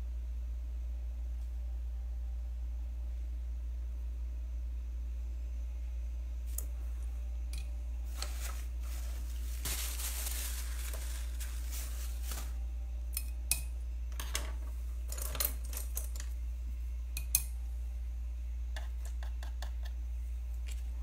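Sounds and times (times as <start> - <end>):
low hum: 0.0 - 21.0
soft hiss: 6.4 - 12.7.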